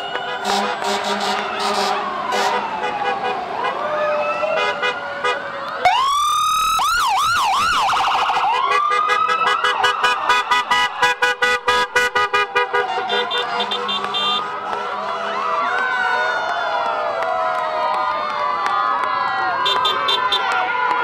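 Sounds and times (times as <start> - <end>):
emergency vehicle sirens: 0.0 - 21.0.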